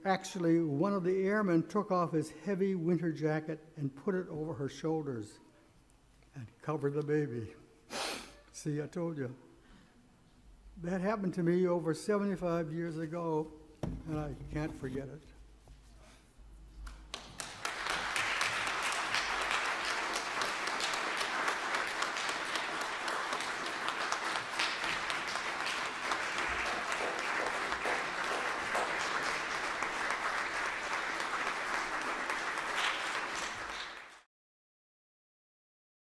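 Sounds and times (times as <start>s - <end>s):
congregation applauding: 16.8s - 34.3s.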